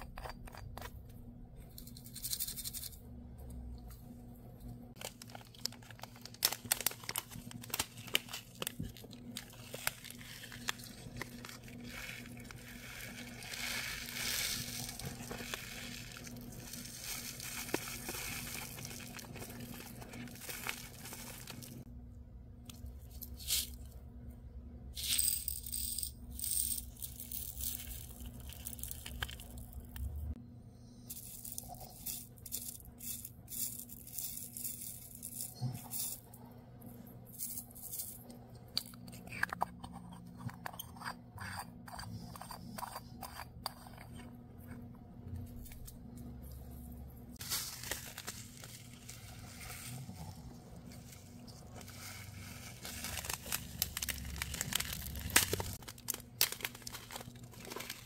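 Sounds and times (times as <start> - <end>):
steady low hum: 0.0 - 58.0
plastic packaging crinkling: 5.0 - 21.8, 47.4 - 58.0
small beads rattling into a plastic jar: 5.0 - 21.8, 25.0 - 29.8, 31.1 - 36.2, 51.7 - 58.0.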